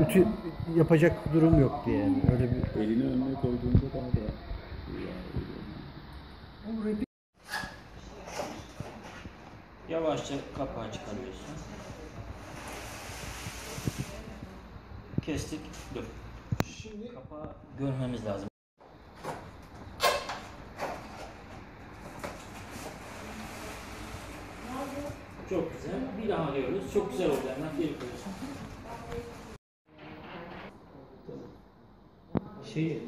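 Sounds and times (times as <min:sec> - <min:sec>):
plastic scraping and rustling: 0:20.7 - 0:25.3.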